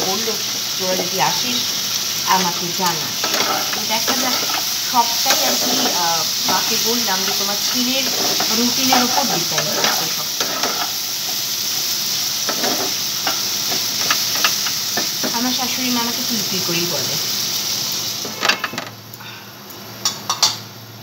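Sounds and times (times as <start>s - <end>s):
food sizzling in hot oil: 0.0s - 21.0s
utensil scraping pan: 3.2s - 11.4s, 12.4s - 15.1s.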